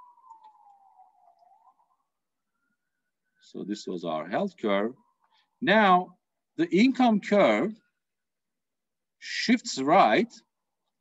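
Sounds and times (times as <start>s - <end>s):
faint distant siren wailing: 0.0s - 6.3s.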